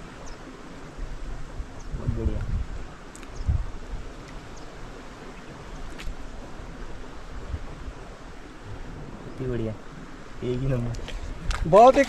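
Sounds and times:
wind: 0.0s - 12.0s
water rushing: 2.8s - 12.0s.

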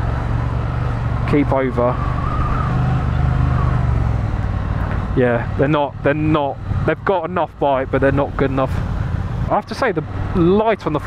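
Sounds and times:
motorcycle engine cruising: 0.0s - 11.0s
road and wind noise: 0.0s - 11.0s.

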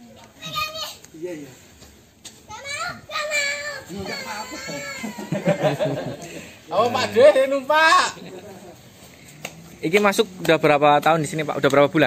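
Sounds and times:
child's drawn-out vocal sound: 2.5s - 5.4s
adult voices: 2.5s - 12.0s.

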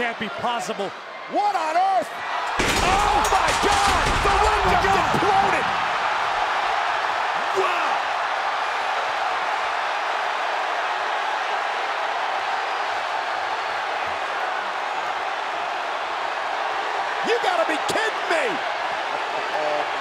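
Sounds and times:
arena crowd cheering and shouting: 0.0s - 20.0s.

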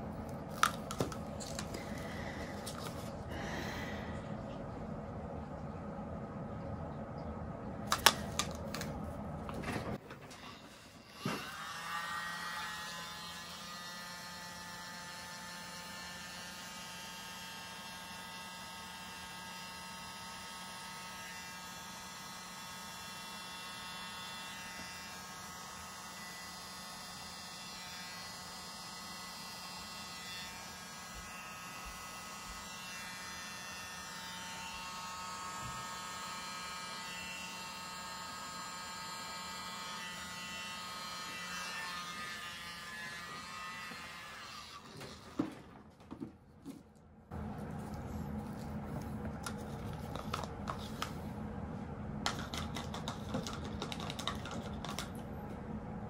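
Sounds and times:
small electric motor humming: 11.0s - 44.9s.

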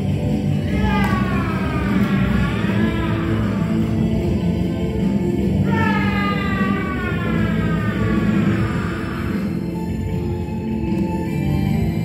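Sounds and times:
loud entrance music over speakers: 0.0s - 12.0s.

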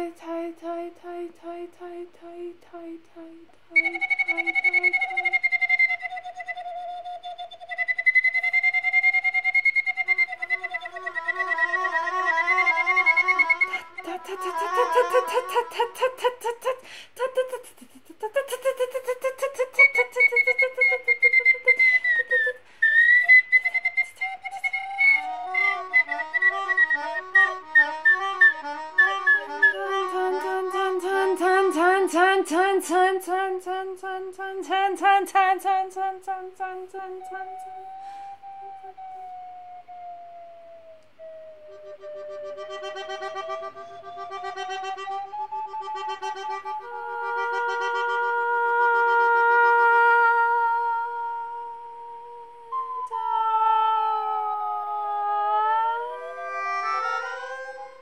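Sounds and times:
slide whistle gliding: 3.7s - 15.6s, 19.7s - 31.3s, 36.9s - 58.0s
melodica notes: 10.0s - 16.3s, 24.6s - 32.3s, 41.6s - 50.9s, 56.1s - 58.0s
woman's voice: 14.0s - 20.3s.

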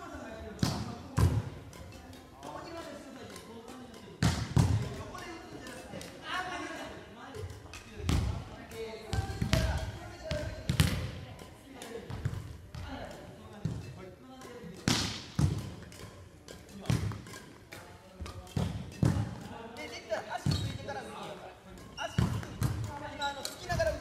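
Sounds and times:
rackets hitting shuttlecocks: 0.6s - 6.2s, 7.4s - 24.0s
players' voices: 16.6s - 24.0s.

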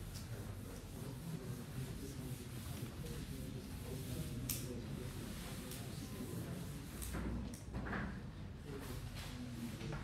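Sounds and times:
eraser rubbing on chalkboard: 0.0s - 7.2s.

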